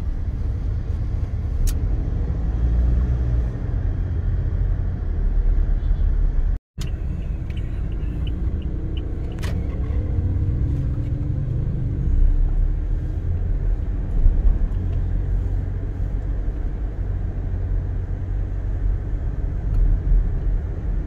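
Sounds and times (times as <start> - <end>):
car engine rumble: 0.0 - 21.0
road noise: 0.0 - 21.0.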